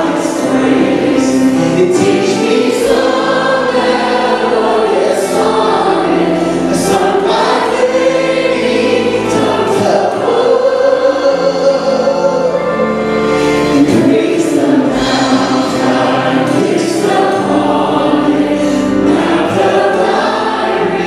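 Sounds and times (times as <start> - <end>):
group singing into microphones: 0.0 - 21.0.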